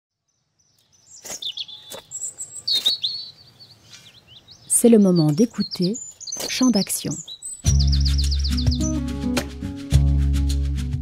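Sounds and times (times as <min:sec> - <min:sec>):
birds chirping: 0:00.3 - 0:09.4.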